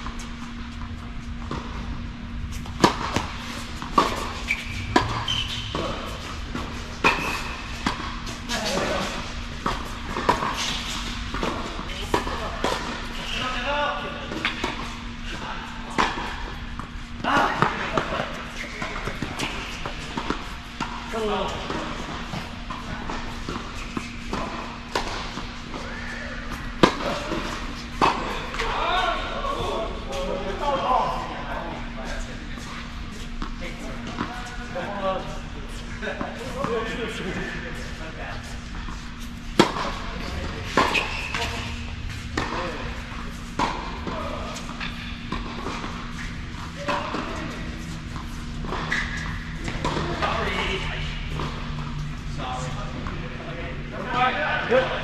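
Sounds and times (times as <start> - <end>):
steady low hum: 0.0 - 55.0
tennis balls struck and bouncing: 2.6 - 13.4, 15.8 - 25.8, 26.5 - 28.8, 38.6 - 50.7
voices: 25.7 - 55.0.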